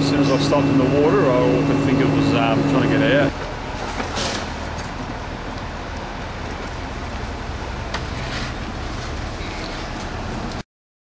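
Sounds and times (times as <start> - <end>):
outdoor noise: 0.0 - 10.6
vehicle engine rumbling: 0.0 - 10.6.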